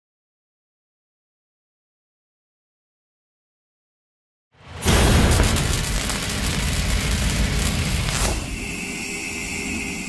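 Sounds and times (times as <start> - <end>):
loud rumbling crackling noise: 4.6 - 8.6
whoosh: 4.6 - 8.9
steady hum with high tone: 4.9 - 10.0.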